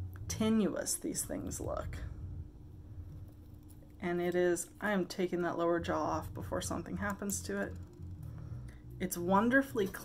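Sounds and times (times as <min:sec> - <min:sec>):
faint steady hum: 0:00.0 - 0:10.0
low uneven rumble: 0:00.0 - 0:10.0.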